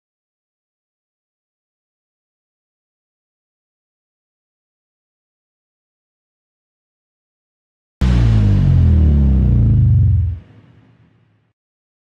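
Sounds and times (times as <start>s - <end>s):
deep rumbling sting: 8.0s - 10.8s.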